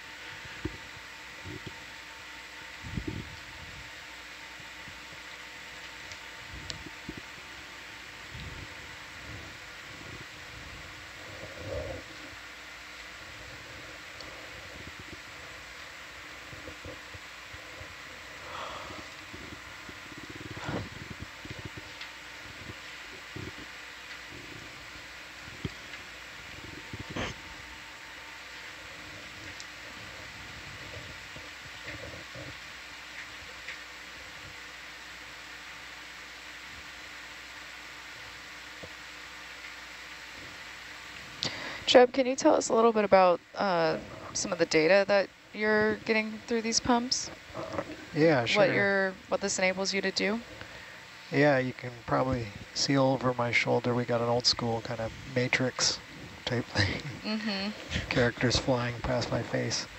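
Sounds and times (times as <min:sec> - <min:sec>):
electronic equipment hum and hiss: 0:00.0 - 0:59.9.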